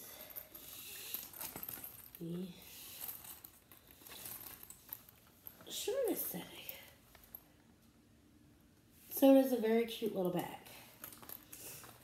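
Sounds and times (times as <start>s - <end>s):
bag strap rustling: 0.3s - 7.4s, 11.0s - 12.0s.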